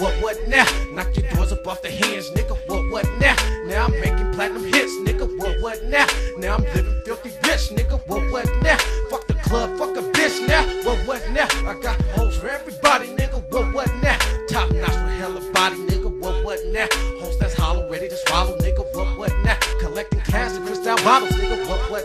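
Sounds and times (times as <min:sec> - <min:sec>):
wavering lead synth tone: 0:00.0 - 0:16.9, 0:17.5 - 0:22.0
hip hop drum beat: 0:00.0 - 0:22.0.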